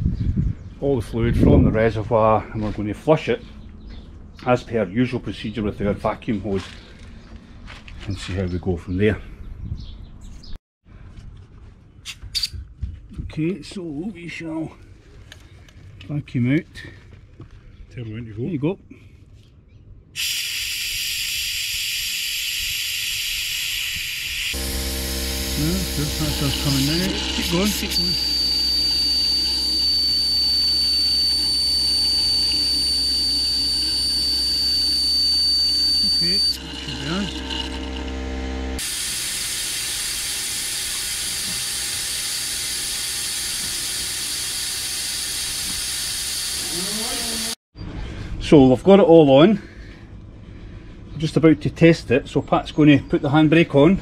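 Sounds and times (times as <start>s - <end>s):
brake bleeder hissing: 20.2s - 35.0s
low mechanical hum: 20.8s - 48.3s
high whistle: 25.6s - 37.3s.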